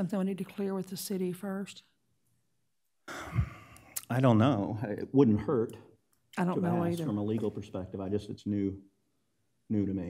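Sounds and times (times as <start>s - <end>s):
person speaking: 6.4s - 8.6s.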